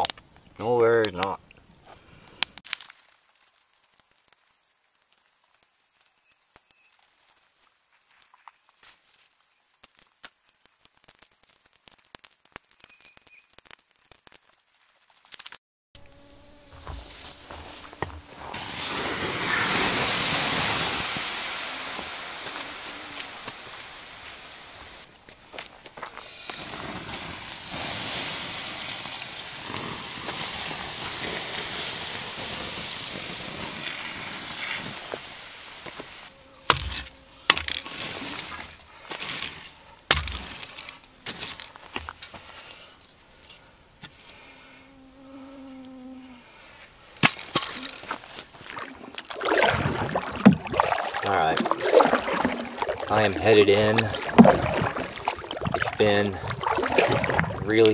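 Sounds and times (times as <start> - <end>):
water sizzling on hot coals: 2.5 - 7.5, 9.3 - 15.5, 16.8 - 25.1, 26.2 - 37.0, 48.2 - 57.9.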